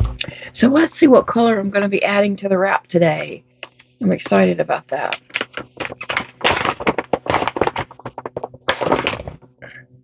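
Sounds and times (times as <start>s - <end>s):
plastic gift bag crinkling: 5.0s - 9.4s.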